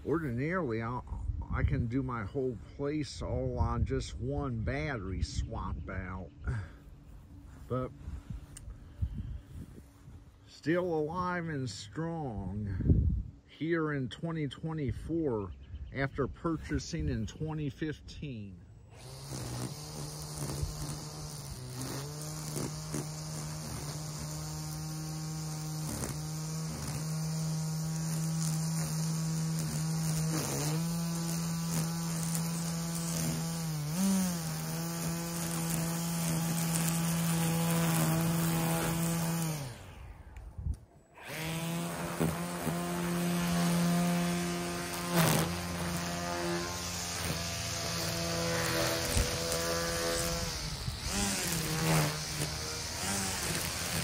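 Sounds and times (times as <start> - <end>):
electric string trimmer whining: 6.4 - 13.4, 18.8 - 54.0.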